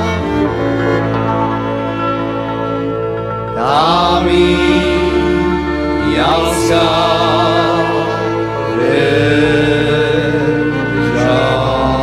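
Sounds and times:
cimbalom band folk song: 0.0s - 12.0s.

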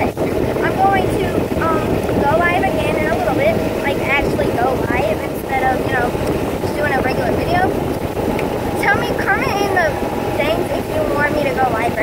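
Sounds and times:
golf cart riding: 0.0s - 12.0s
wind buffeting microphone: 0.0s - 12.0s.

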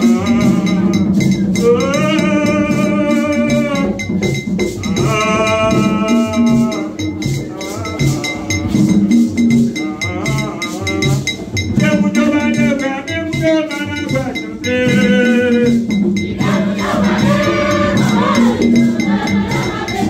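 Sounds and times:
percussion keeping time: 0.0s - 20.0s
singer on a microphone: 0.0s - 20.0s
steady drum beat: 0.0s - 20.0s
voices singing: 0.0s - 20.0s.

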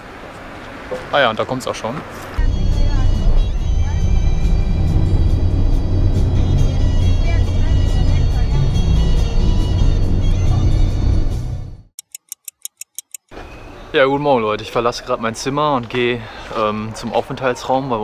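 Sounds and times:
minibus engine rumble: 0.0s - 12.0s
voices: 1.1s - 4.6s, 6.5s - 9.4s
music: 2.4s - 11.9s
stopwatch ticking: 12.0s - 13.3s.

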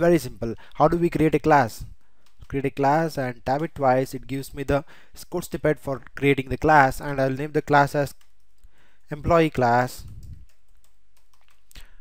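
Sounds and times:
steady low hiss: 0.0s - 12.0s
faint keyboard keystrokes: 10.0s - 11.9s.

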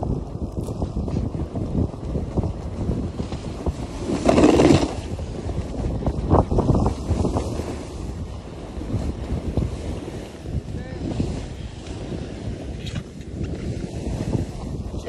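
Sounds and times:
wind rushing over microphone: 0.0s - 15.0s
skis scraping over snow: 0.3s - 15.0s.

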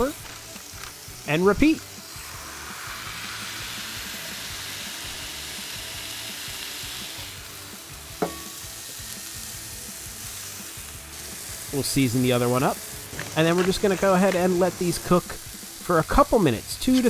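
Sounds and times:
burger patties sizzling on griddle: 0.0s - 17.0s.

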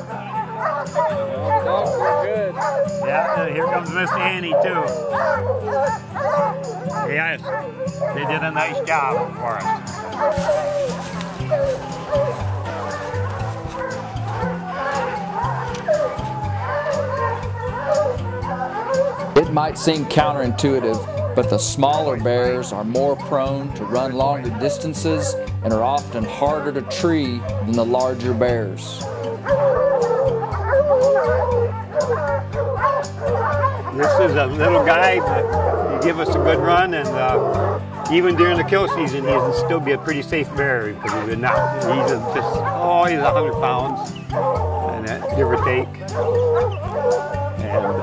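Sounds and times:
background music with low notes: 0.0s - 48.0s
hounds barking and howling: 0.0s - 48.0s.

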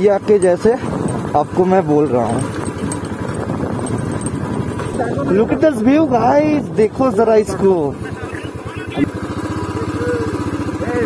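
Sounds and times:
motorcycle engine running at low revs: 0.0s - 11.0s.

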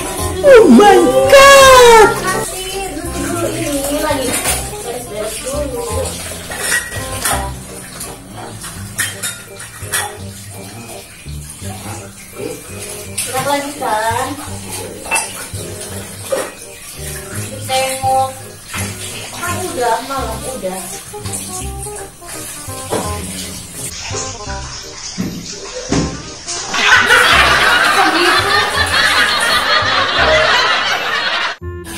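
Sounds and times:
crockery and utensils clinking: 0.0s - 11.3s, 11.9s - 23.8s
tap water running into sink: 0.0s - 29.8s.

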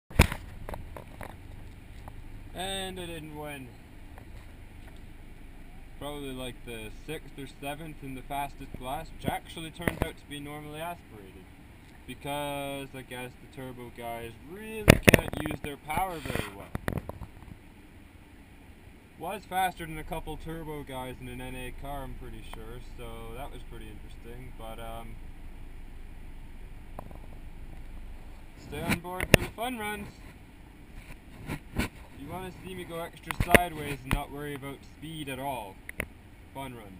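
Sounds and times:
car engine idling: 0.1s - 36.9s.

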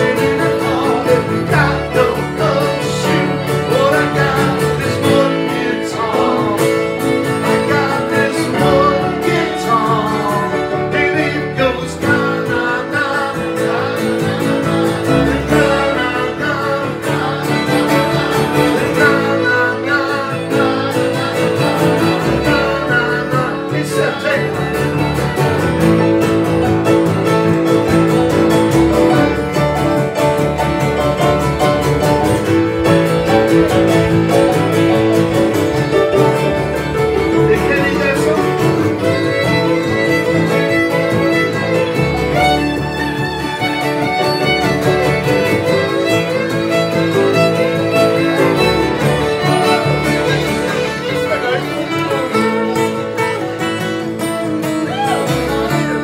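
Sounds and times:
person singing: 0.0s - 26.2s, 28.6s - 56.0s
acoustic guitars strummed: 0.0s - 56.0s
fiddle: 0.0s - 56.0s
keyboard: 0.0s - 56.0s.

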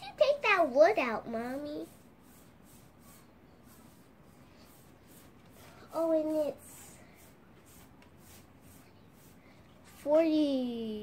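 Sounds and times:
paintbrush brushing on wood: 1.0s - 10.2s.

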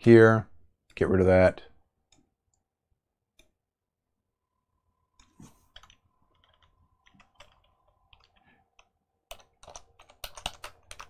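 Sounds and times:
typing on computer keyboard: 5.7s - 11.0s.

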